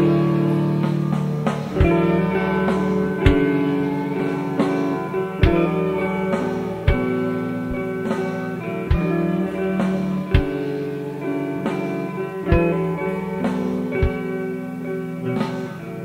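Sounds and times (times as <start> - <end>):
slow sparse drum beat: 0.0 - 10.8, 11.6 - 14.4
ringing guitar chords: 0.0 - 16.0.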